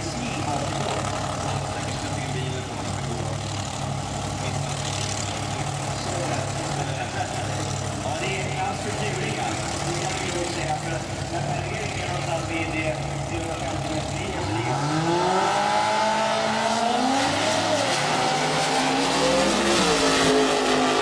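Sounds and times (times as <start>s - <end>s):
dragster engines accelerating: 0.0s - 21.0s.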